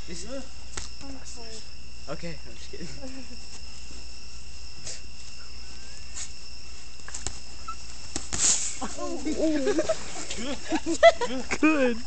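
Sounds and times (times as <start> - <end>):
crickets chirring: 0.0 - 12.0
hissy burst: 8.1 - 8.9.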